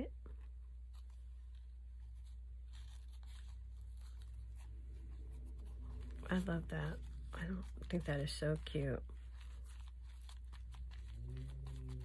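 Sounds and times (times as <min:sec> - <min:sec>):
paper rustling: 0:00.3 - 0:12.0.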